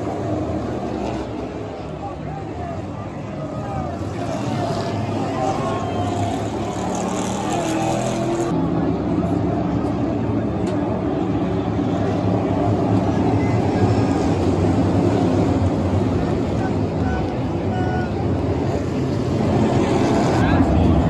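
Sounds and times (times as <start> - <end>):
crowd chatter: 0.0 - 21.0
race car engines passing: 0.0 - 21.0.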